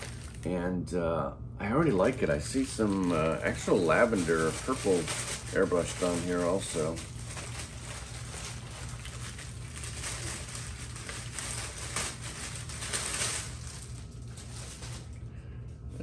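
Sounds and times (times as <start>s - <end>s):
plastic bag crinkling: 0.0s - 0.6s, 1.7s - 15.3s.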